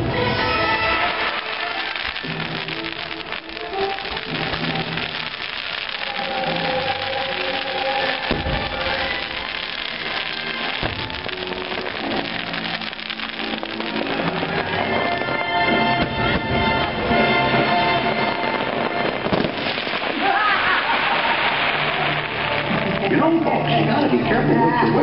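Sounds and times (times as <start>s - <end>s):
loud show music: 0.0s - 20.2s, 20.9s - 25.0s
fireworks bursting and crackling: 0.0s - 24.5s
sharp firework bangs: 0.9s - 23.1s.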